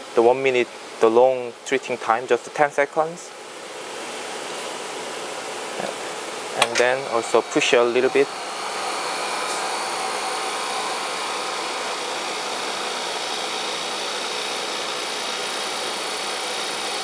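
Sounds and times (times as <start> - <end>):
vacuum pump hissing: 4.0 - 17.0.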